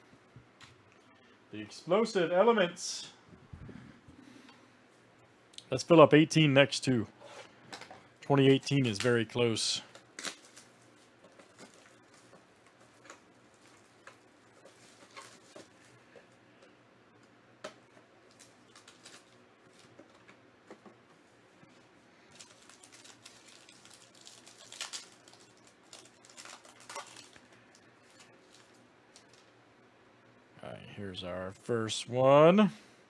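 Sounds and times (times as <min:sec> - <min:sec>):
foil wrapper crinkling: 0:08.5 - 0:16.0, 0:18.2 - 0:20.3, 0:22.2 - 0:29.6.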